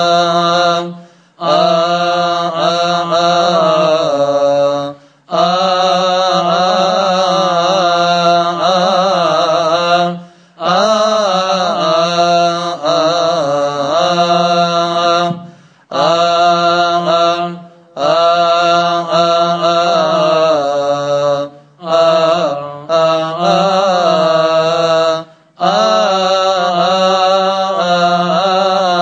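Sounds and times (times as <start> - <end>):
hymn chanted: 0.0 - 29.0.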